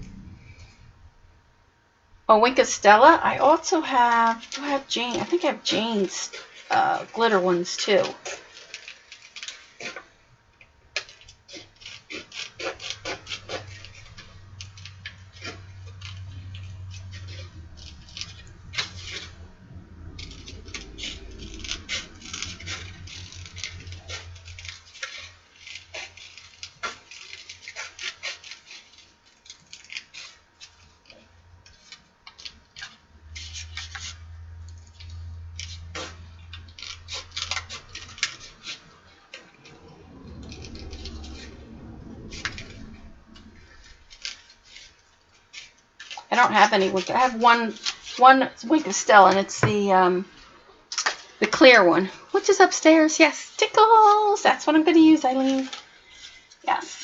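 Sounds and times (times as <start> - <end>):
low hum: 0.0 - 8.2, 10.2 - 27.7, 30.3 - 45.5
scissors snipping paper: 3.7 - 10.1, 11.0 - 19.3, 20.1 - 39.8, 44.1 - 49.9, 51.0 - 57.0
paper rustling: 3.7 - 10.2, 10.9 - 57.0.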